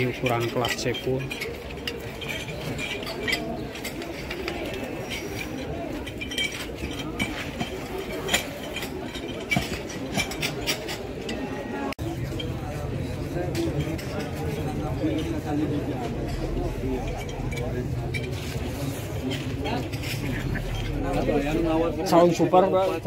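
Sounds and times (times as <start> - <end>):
men chattering: 0.0 - 23.0.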